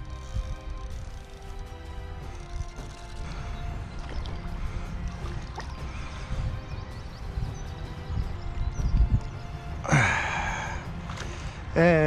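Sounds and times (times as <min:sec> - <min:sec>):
wind rumble on microphone: 0:03.1 - 0:09.8
man sighing: 0:09.9 - 0:10.8.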